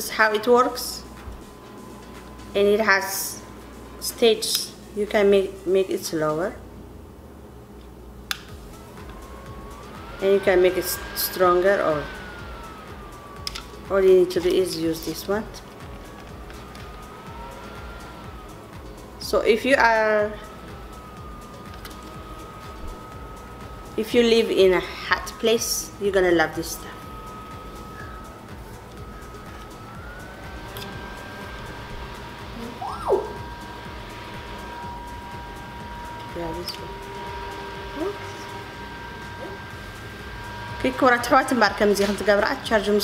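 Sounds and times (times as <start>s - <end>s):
desk fan motor whine: 0.0s - 43.0s
light click: 8.3s - 8.5s
swooping tone: 8.4s - 43.0s.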